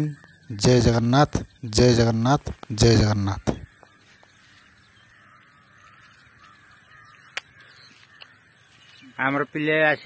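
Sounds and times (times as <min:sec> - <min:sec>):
faint bird calls: 0:00.0 - 0:10.0
quiet outdoor ambience: 0:00.0 - 0:10.0.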